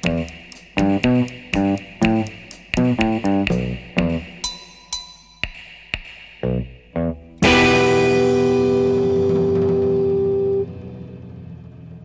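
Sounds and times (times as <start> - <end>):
electric guitar and bass chord: 7.0 - 12.0.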